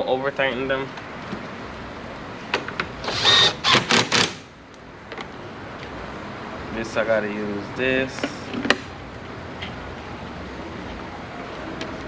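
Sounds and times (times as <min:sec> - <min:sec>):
cordless drill whining: 0:03.0 - 0:03.9.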